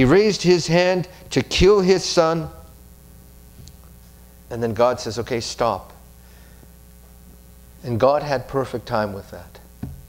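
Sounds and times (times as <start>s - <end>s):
mains hum: 0.0s - 10.0s.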